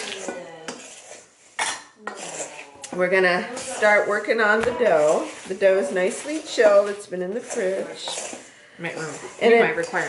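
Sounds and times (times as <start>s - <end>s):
wooden spoon scraping metal bowl: 0.0s - 10.0s.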